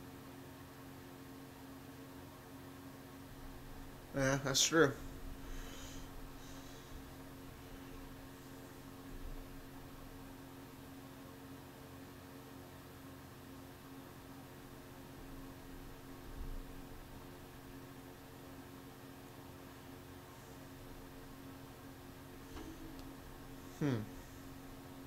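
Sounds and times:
faint electrical hum: 0.0s - 25.0s.

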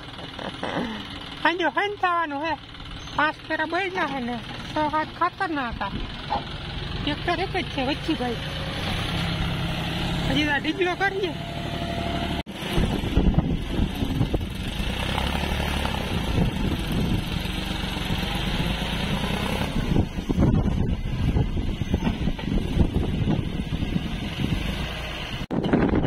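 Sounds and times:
tractor engine under load: 0.0s - 26.0s.

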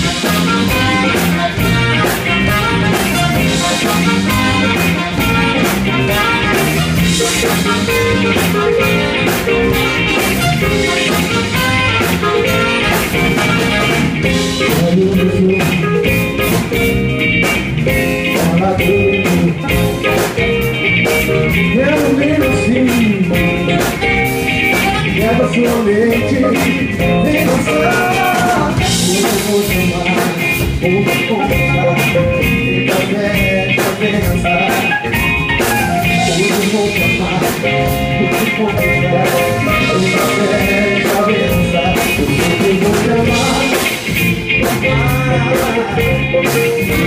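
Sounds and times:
man singing lead vocals: 0.0s - 16.3s, 18.3s - 20.4s, 21.6s - 47.0s
bass: 0.0s - 47.0s
drum kit: 0.0s - 47.0s
electric guitar: 0.0s - 47.0s.

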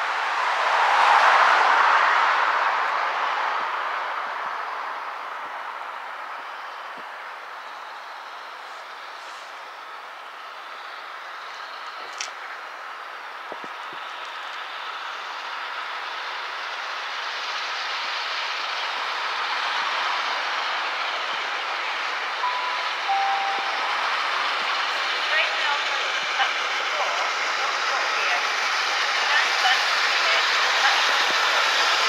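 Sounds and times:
steam train approaching: 7.4s - 32.0s
two-note chime: 22.4s - 24.4s.

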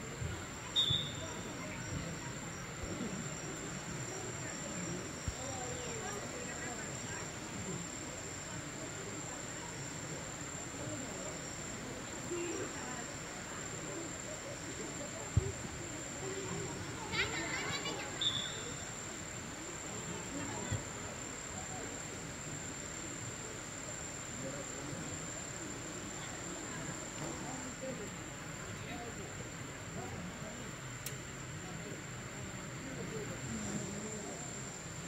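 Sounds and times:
faint distant voices: 0.0s - 35.0s
insects droning: 0.0s - 35.0s.

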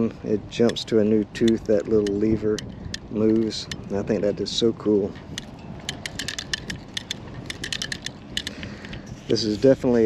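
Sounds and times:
fishing reel ratchet clicking: 1.4s - 3.9s, 5.3s - 9.1s.

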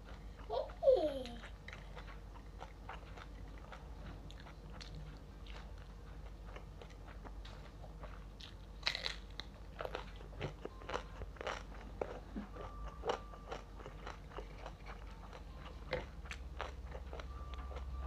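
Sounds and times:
crunchy chewing: 0.0s - 18.0s.

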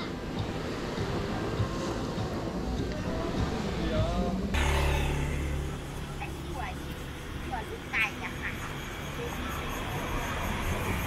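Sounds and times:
traffic background: 0.0s - 11.0s.

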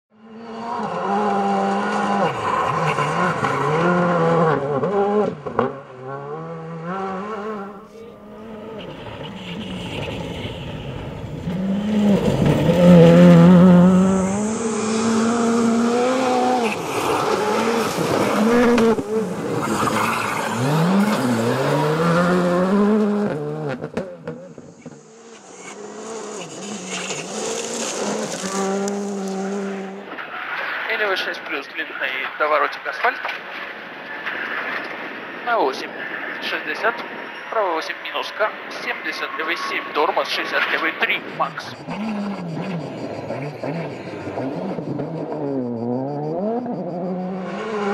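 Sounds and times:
rally car engines at full throttle: 0.1s - 47.9s.

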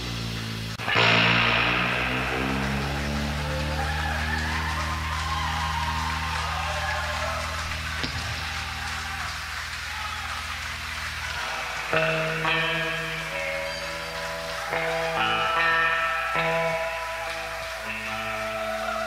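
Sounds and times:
electric guitar chords: 0.0s - 6.5s, 10.6s - 19.0s
live rock band: 0.8s - 5.4s, 11.2s - 19.0s.

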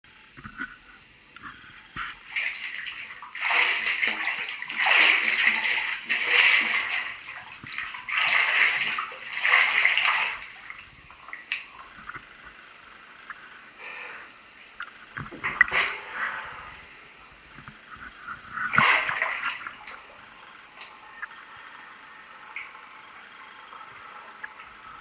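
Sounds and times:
water dripping: 1.4s - 13.4s, 17.0s - 25.0s
water sloshing in bathtub: 2.0s - 12.6s, 14.6s - 21.3s.

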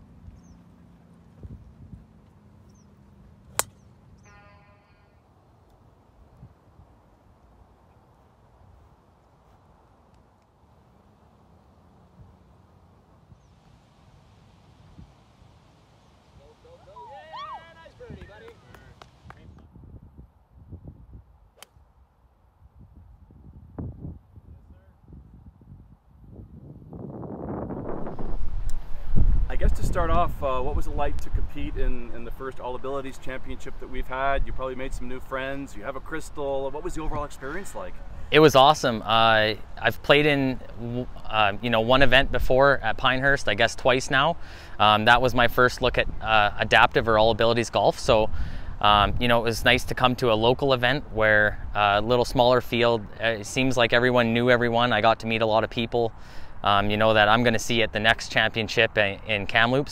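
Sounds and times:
wind buffeting microphone: 0.0s - 4.3s, 17.8s - 22.0s, 22.6s - 38.4s
small birds chirping: 0.1s - 4.7s
golf club striking ball: 3.5s - 4.8s, 21.6s - 21.8s
held tone with overtones: 4.2s - 5.3s.

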